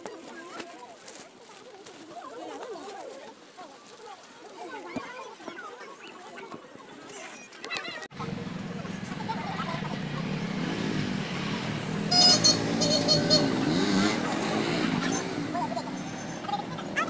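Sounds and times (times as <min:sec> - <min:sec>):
people's voices: 0:00.0 - 0:17.0
vehicle engines running: 0:08.1 - 0:17.0.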